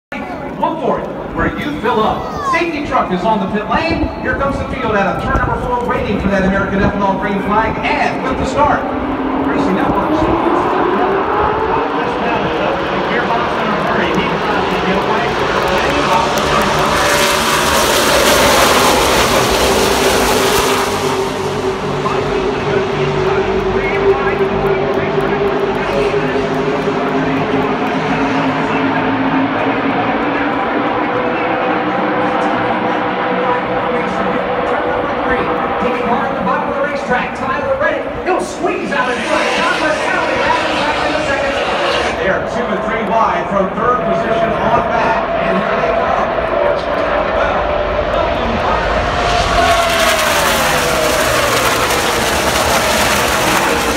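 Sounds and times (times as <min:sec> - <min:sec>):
race truck engines at full throttle: 0:00.1 - 0:53.9.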